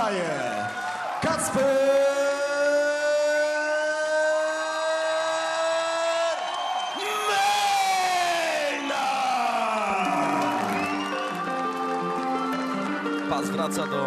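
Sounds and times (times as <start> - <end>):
crowd cheering: 0.0 - 14.0
music: 8.5 - 14.0.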